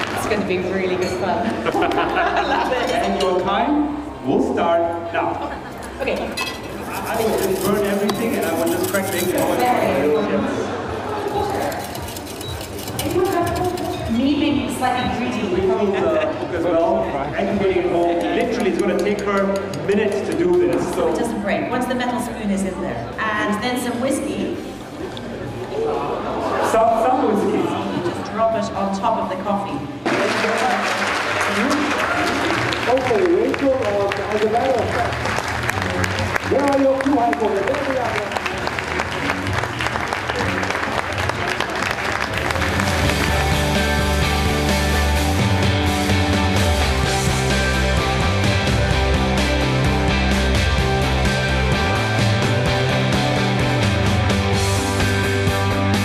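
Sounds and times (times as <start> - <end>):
audience applauding: 0.0 - 0.4, 30.0 - 44.2
people talking: 5.2 - 11.9, 13.0 - 24.6.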